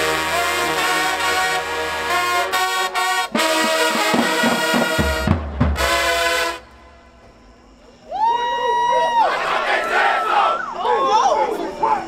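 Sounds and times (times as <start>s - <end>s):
marching band playing: 0.0s - 7.3s
bass drum hits: 3.4s - 6.2s.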